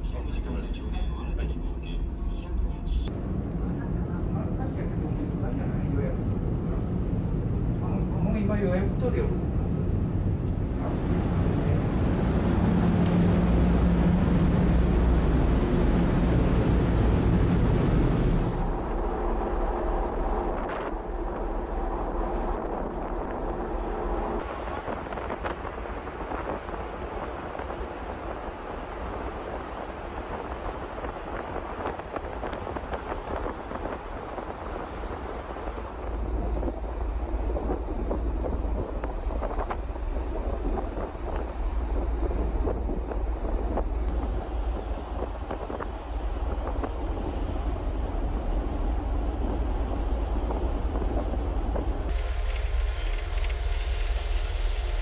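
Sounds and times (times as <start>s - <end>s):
ship engines droning: 2.9s - 18.8s, 51.6s - 55.0s
rushing sea water: 3.1s - 22.8s, 23.4s - 55.0s
wind on microphone: 3.1s - 55.0s.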